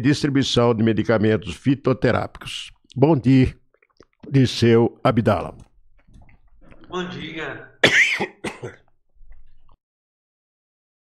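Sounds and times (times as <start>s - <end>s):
man clearing his throat: 7.8s - 8.8s.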